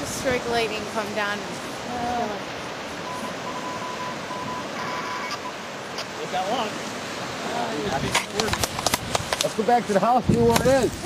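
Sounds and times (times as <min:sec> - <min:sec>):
lake waves: 0:00.0 - 0:11.0
wind: 0:00.0 - 0:11.0.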